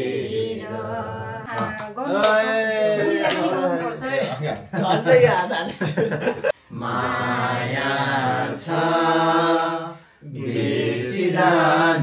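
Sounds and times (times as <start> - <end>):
voices chanting together: 0.0 - 3.8, 6.4 - 12.0.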